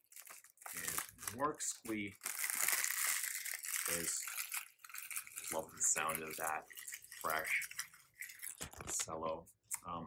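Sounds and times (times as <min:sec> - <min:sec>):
cellophane wrapper crinkling: 0:00.0 - 0:09.2.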